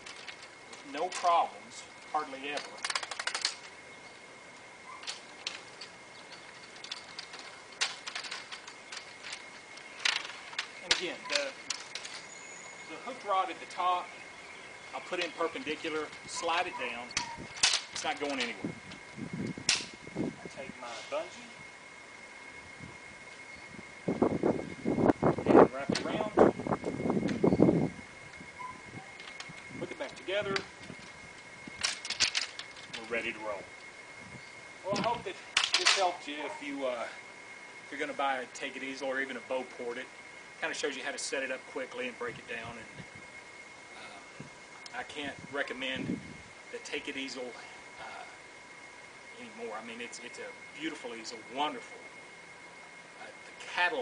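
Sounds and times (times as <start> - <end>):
man speaking indistinctly: 0.8 - 2.8, 10.8 - 11.7, 12.9 - 14.2, 14.9 - 17.2, 18.0 - 18.8, 20.4 - 21.6, 25.4 - 26.4, 29.8 - 30.7, 32.9 - 33.7, 34.8 - 37.2, 37.9 - 43.0, 44.9 - 48.4, 49.4 - 52.1, 53.2 - 54.0
wooden easel parts knocking together: 2.4 - 3.8, 5.0 - 12.3, 17.2 - 18.6, 19.7 - 20.0, 31.8 - 33.1, 35.0 - 36.2.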